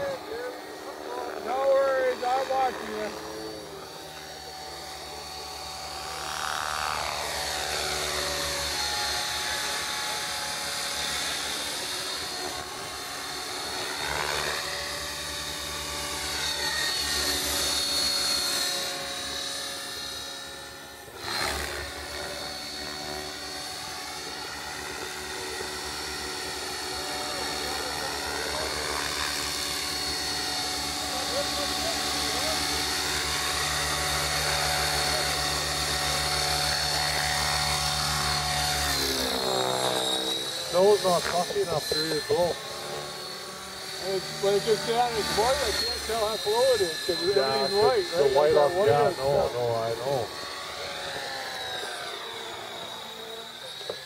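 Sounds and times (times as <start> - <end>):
high whine of motor and gears: 0.0 - 54.0.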